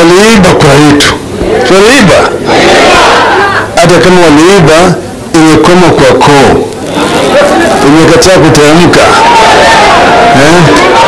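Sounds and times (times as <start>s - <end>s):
man speaking into microphone: 0.0s - 2.4s, 3.7s - 6.7s, 7.6s - 9.2s, 10.4s - 10.8s
crowd shouting: 1.4s - 3.8s, 6.8s - 8.3s, 8.9s - 11.0s.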